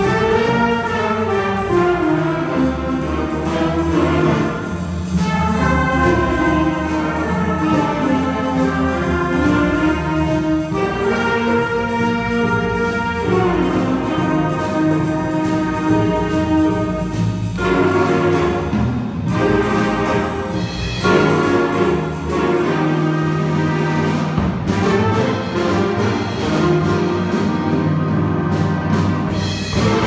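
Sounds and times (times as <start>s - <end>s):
cymbal keeping a beat: 0.0s - 27.8s
jazz big band playing: 0.0s - 30.0s.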